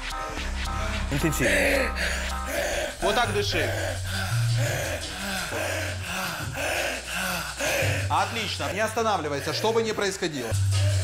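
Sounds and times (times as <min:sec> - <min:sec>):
man breathing hard and fast: 0:00.2 - 0:09.8.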